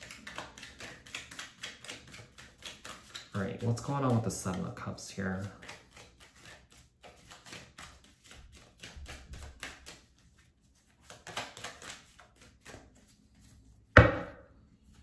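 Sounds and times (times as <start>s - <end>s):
cards being shuffled: 0.0s - 13.6s.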